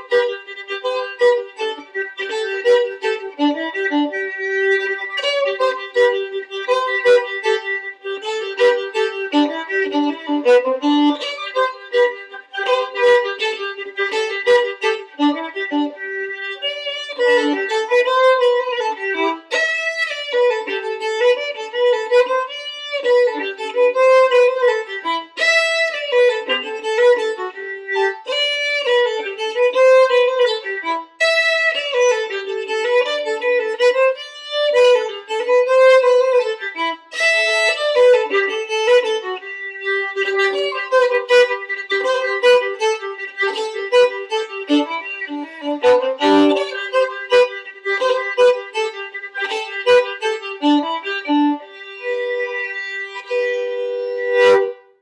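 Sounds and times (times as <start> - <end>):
solo violin fiddle tune: 0.0 - 55.0.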